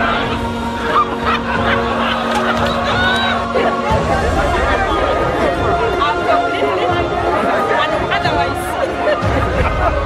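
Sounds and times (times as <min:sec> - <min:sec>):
background music: 0:00.0 - 0:10.0
crowd excited cries: 0:00.0 - 0:10.0.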